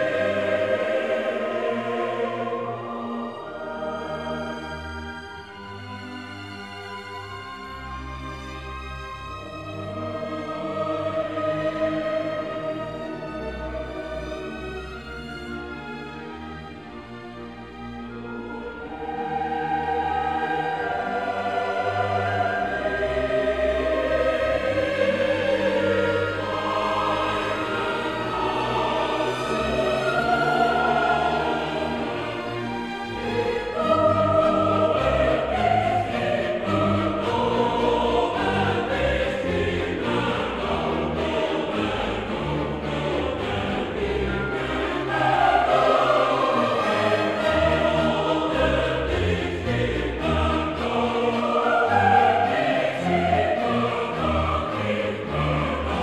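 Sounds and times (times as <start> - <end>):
choir singing: 0.0 - 56.0
orchestral accompaniment: 0.0 - 56.0.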